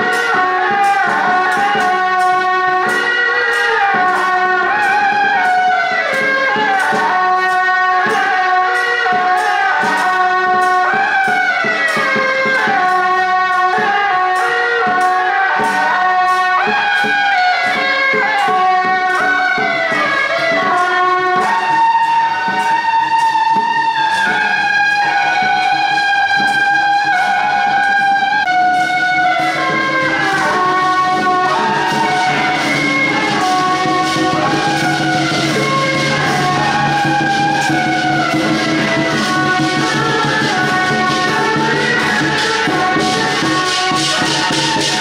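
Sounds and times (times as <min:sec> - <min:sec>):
double-reed horns playing melody: 0:00.0 - 0:45.0
steady percussion beat: 0:00.0 - 0:45.0.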